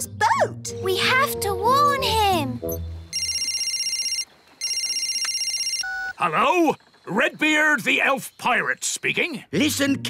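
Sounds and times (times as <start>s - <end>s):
trilling electronic phone ring: 3.1s - 6.2s.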